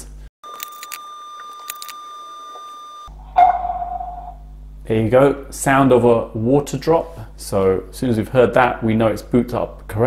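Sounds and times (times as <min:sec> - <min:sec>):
faint steady high tone: 0:00.5 - 0:04.5
water drop chime: 0:03.4 - 0:04.4.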